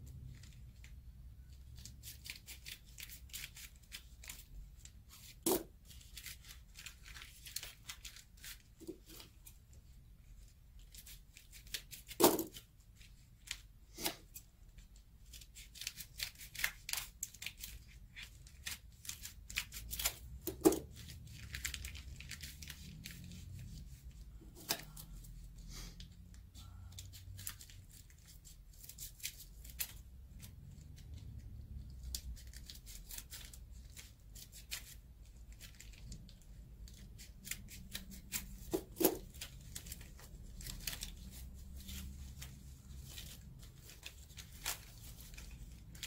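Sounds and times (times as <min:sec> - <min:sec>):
paper rustling: 0:00.1 - 0:09.6, 0:10.3 - 0:25.6, 0:32.0 - 0:46.0
scissors snipping paper: 0:36.9 - 0:46.0.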